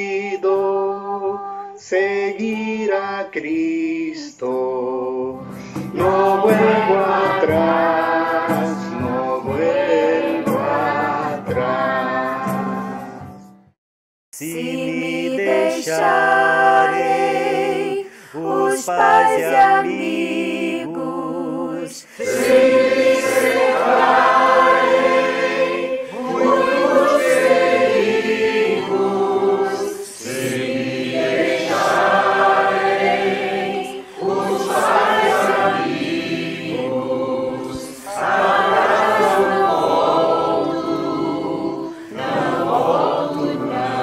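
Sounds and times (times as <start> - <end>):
mixed choir singing: 0.0 - 13.4, 14.4 - 44.0.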